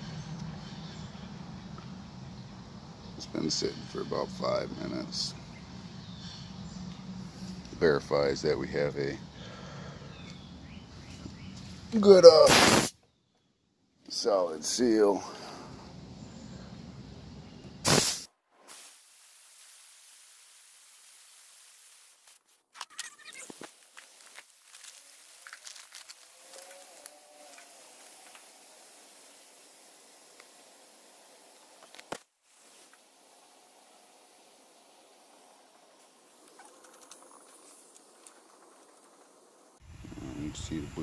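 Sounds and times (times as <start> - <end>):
pressurised gas hissing from hoses: 12.4 - 13.0, 17.8 - 22.4, 23.5 - 36.6.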